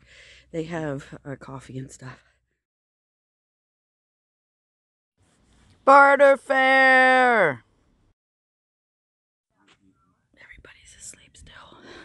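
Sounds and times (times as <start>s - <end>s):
person whispering: 10.4s - 11.8s.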